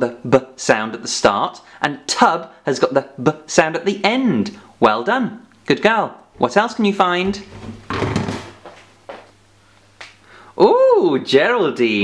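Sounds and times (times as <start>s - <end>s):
objects knocking and rustling: 7.2s - 9.4s.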